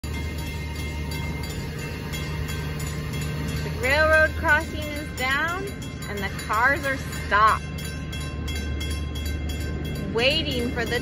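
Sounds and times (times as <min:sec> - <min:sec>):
continuous low rumble: 0:00.0 - 0:11.0
railroad crossing bell ringing: 0:00.0 - 0:11.0.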